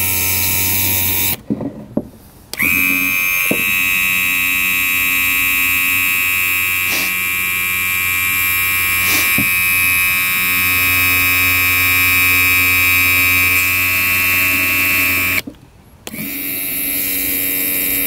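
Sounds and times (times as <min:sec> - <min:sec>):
electric pump motor whining: 0:00.0 - 0:01.4, 0:02.5 - 0:18.0.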